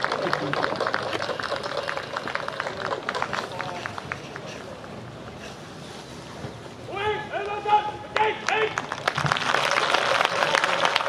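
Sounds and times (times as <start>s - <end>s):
spectators clapping: 0.0s - 4.6s, 8.2s - 11.0s
faint crowd chatter: 0.0s - 11.0s.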